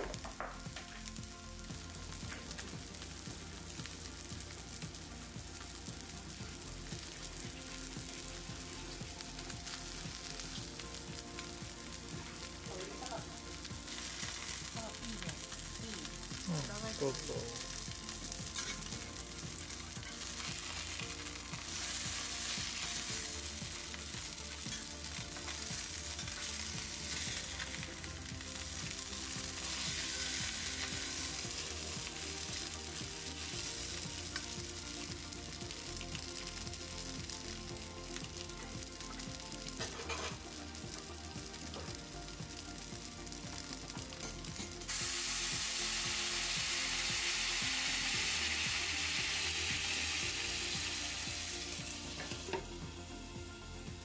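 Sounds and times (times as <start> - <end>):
meat patties sizzling in oil: 0.0 - 54.0.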